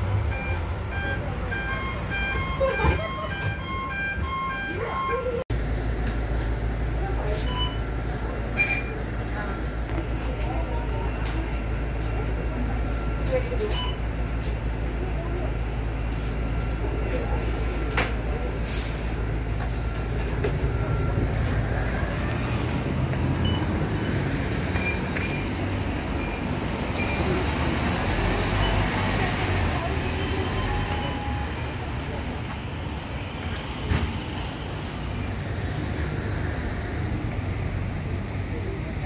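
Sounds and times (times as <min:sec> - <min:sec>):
bus humming: 0:00.0 - 0:39.0
short high beeps: 0:00.3 - 0:05.4.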